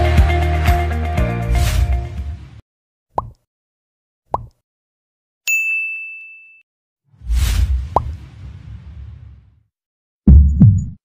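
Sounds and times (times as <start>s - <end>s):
bell ding: 5.5s - 6.6s
whoosh with a pop: 7.2s - 9.6s.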